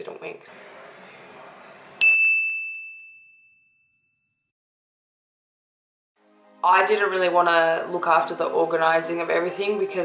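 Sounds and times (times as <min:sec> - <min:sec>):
bright ding: 0:02.0 - 0:04.4.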